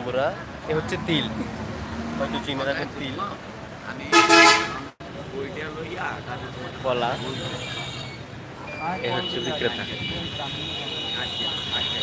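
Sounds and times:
vehicle horn honking: 4.1s - 4.9s.

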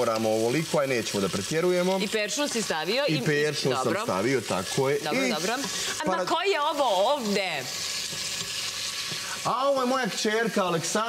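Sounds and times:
vegetables sizzling in a pot: 0.0s - 11.0s
wooden spoon stirring: 7.6s - 10.2s.

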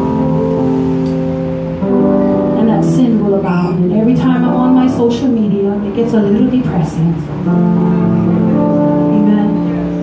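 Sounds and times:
soft worship band music: 0.0s - 10.0s.

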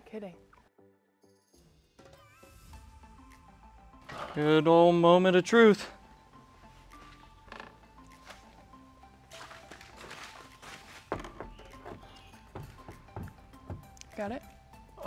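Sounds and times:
faint background music: 0.0s - 15.0s
window frame knocking on metal: 11.1s - 14.0s.

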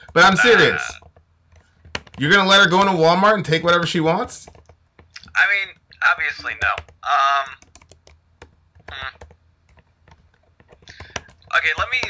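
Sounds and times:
keyboard typing clicks: 1.0s - 2.2s, 6.4s - 12.0s.

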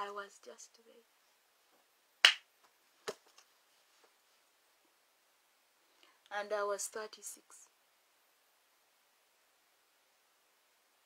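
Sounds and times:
hand smack: 2.2s - 2.4s.

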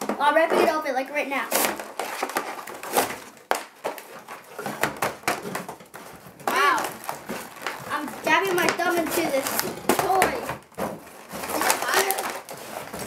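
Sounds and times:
person speaking: 0.1s - 1.7s, 6.4s - 10.6s, 11.5s - 13.0s
cardboard ripping: 1.4s - 13.0s
plastic wrapping crinkling: 1.4s - 13.0s.

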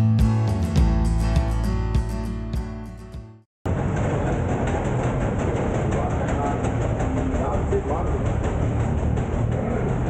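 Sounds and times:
bus engine: 3.7s - 10.0s
road rumble: 3.7s - 10.0s.

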